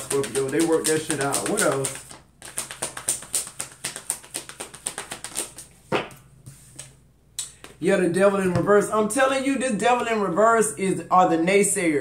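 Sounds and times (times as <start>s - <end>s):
cards being shuffled: 0.0s - 7.0s.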